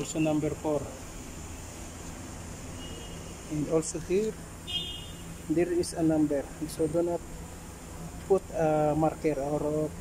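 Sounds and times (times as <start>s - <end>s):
low background hum and hiss: 0.0s - 10.0s.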